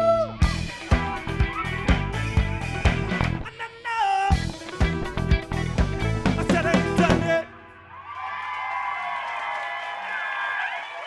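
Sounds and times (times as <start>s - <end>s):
drum kit beat: 0.0s - 3.6s, 4.3s - 7.5s
live band playing funk rock: 0.0s - 7.4s.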